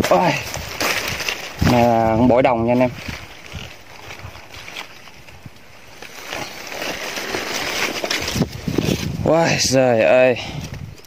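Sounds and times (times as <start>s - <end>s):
dry grass and leaves rustling: 0.0s - 11.0s
wind on microphone: 0.4s - 5.6s, 8.0s - 11.0s.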